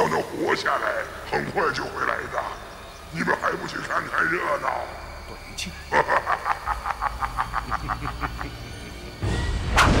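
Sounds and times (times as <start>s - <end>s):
man laughing in staccato: 5.9s - 9.2s.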